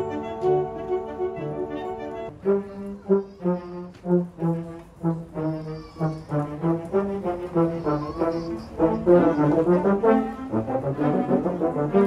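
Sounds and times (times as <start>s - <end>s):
concert wind band playing: 0.0s - 12.0s.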